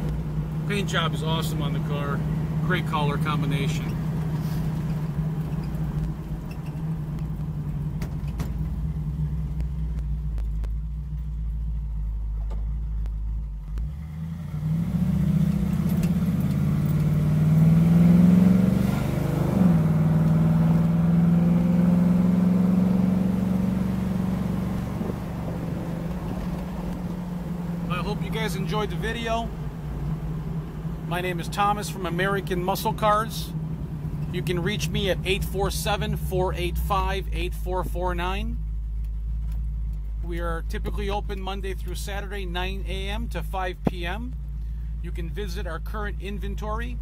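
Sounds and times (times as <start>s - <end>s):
car engine accelerating: 0.0s - 47.0s.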